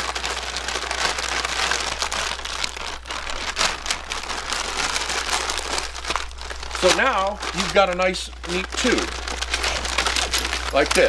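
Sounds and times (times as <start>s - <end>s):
bag rustling and crinkling: 0.0s - 11.0s.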